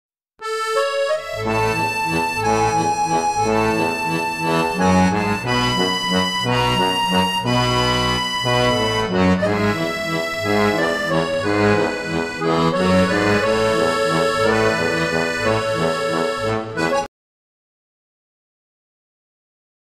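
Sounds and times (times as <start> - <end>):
bass notes: 0.4 - 17.1
instrumental melody line: 0.4 - 17.1.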